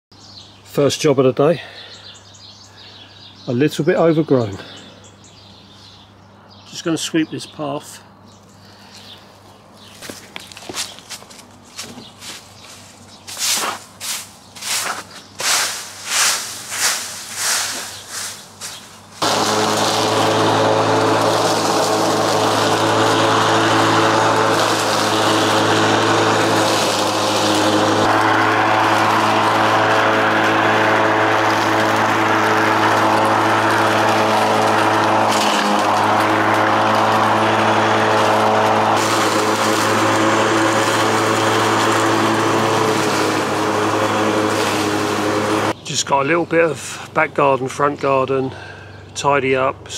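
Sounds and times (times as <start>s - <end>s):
broom sweeping concrete: 10.1s - 20.2s
small petrol engine running: 15.4s - 45.8s.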